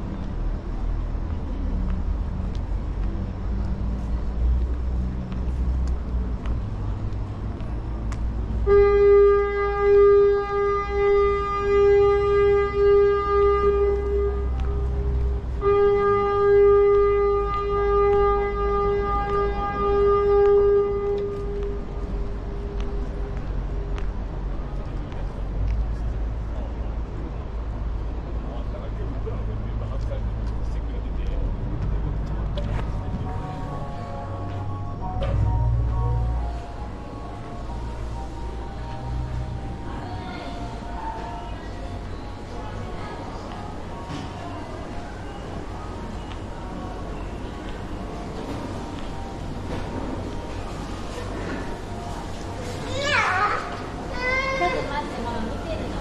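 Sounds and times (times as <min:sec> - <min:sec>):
low outdoor rumble: 0:00.0 - 0:56.0
horn blasts: 0:08.6 - 0:22.4, 0:32.9 - 0:39.8.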